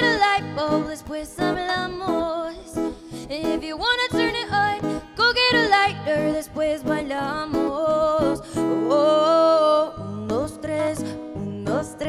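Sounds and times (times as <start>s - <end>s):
acoustic guitar: 0.0s - 12.0s
woman singing pop song: 0.0s - 12.0s.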